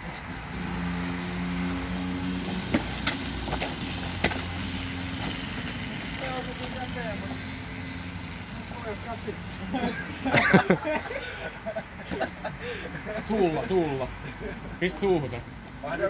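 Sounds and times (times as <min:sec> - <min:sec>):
engine humming: 0:00.0 - 0:14.7.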